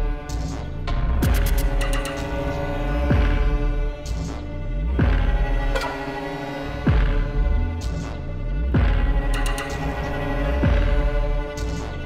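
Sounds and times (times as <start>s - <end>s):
string quartet sustained chords: 0.0s - 12.0s.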